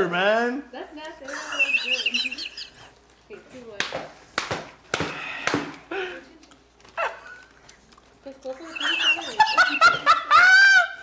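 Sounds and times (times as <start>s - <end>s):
people laughing: 1.2s - 2.9s, 8.5s - 11.0s
sharp hand slaps: 3.8s - 5.8s.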